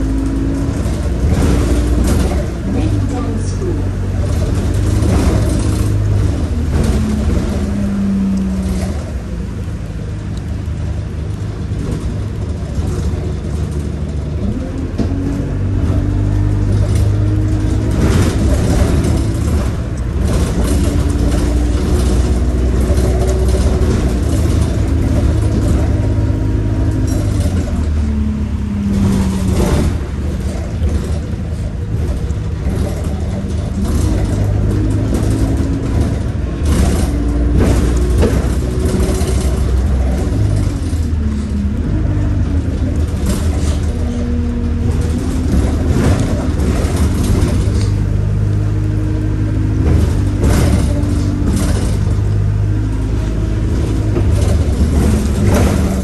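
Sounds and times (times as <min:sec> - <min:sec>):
body rattles and knocks: 0:00.0 - 0:56.0
bus engine rumble: 0:00.0 - 0:56.0
engine whine: 0:00.0 - 0:56.0.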